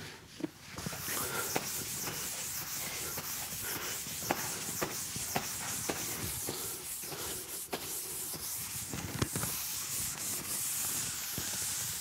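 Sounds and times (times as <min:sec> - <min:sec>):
eraser rubbing on blackboard: 0:00.8 - 0:12.0.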